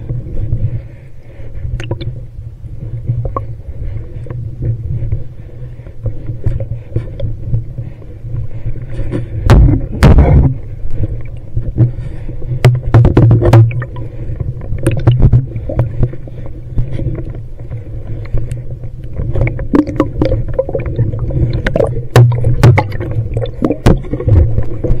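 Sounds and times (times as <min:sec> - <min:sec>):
low underwater rumble: 0:00.0 - 0:25.0.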